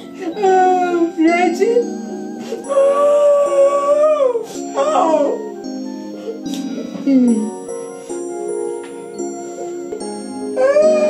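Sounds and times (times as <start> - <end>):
background music: 0.0 - 11.0
woman wailing in grief: 2.4 - 5.5, 10.6 - 11.0.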